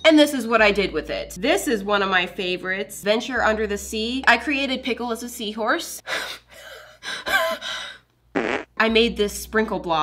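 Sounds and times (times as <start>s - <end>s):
woman speaking: 0.0s - 6.0s, 8.8s - 10.0s.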